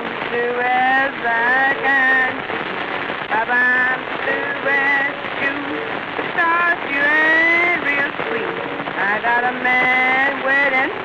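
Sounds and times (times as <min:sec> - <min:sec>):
woman singing blues: 0:00.0 - 0:02.5, 0:03.3 - 0:11.0
record crackle and hiss: 0:00.0 - 0:11.0.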